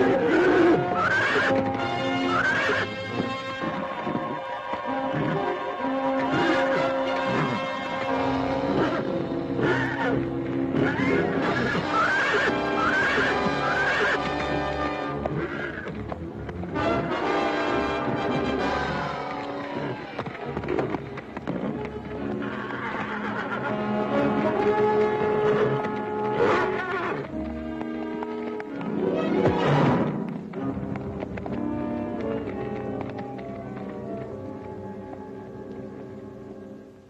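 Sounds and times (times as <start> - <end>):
horse whinnying: 0.0 - 16.0, 16.7 - 27.4
film score music: 0.0 - 37.0.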